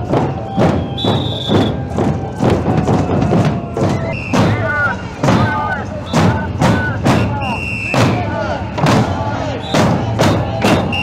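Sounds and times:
bass and snare drums marching: 0.0 - 11.0.

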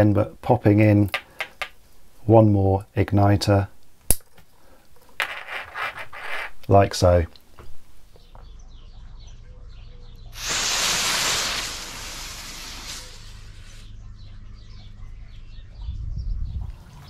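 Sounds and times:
faint birdsong: 6.7 - 17.0
firework igniters hissing: 10.4 - 13.9.

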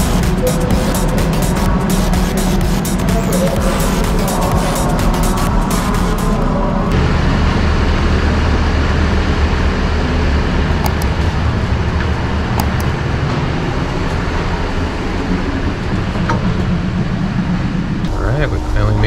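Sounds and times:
train idling rumble: 0.0 - 19.0.

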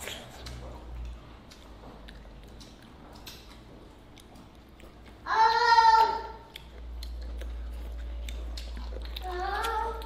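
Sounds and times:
child chewing: 0.0 - 10.0.

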